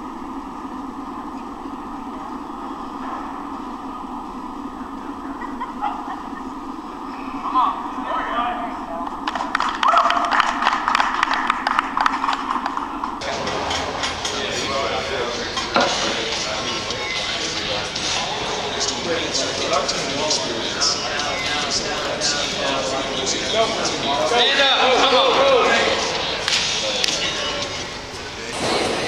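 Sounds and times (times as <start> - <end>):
hall hum: 0.0 - 29.0
voices: 0.0 - 29.0
crowd clapping and cheering: 9.0 - 27.8
people shouting: 9.8 - 10.4.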